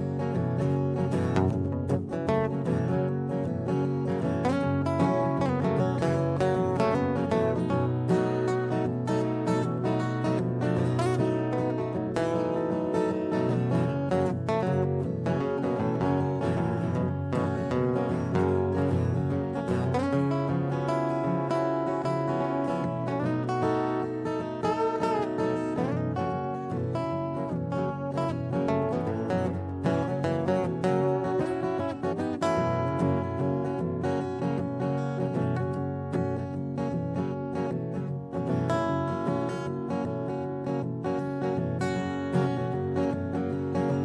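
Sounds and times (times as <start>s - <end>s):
acoustic guitar music: 0.0s - 44.0s.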